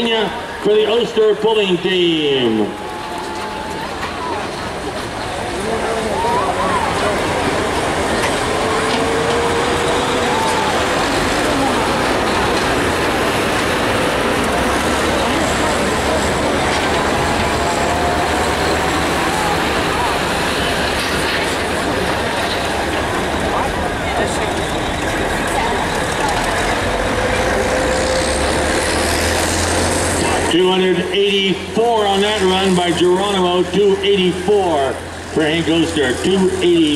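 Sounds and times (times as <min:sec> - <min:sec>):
crowd voices: 0:00.0 - 0:36.9
diesel truck engine under load: 0:00.0 - 0:36.9.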